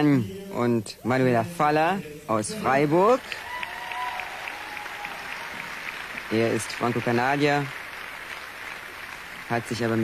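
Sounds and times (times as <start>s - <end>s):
audience applause: 3.2s - 10.0s.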